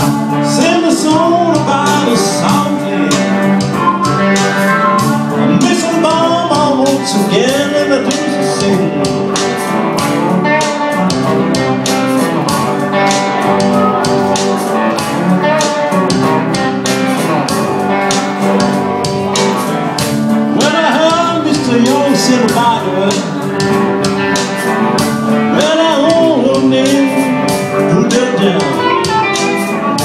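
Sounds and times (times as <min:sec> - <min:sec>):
live blues on electric guitars: 0:00.0 - 0:30.0
steady beat: 0:00.0 - 0:30.0.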